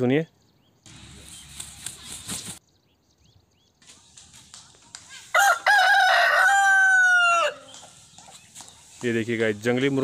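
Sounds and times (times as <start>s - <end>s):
rooster crowing: 5.3s - 7.7s.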